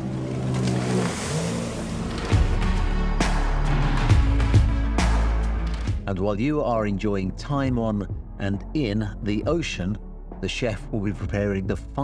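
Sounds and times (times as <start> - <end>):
motorboat engine running: 0.0 - 2.9.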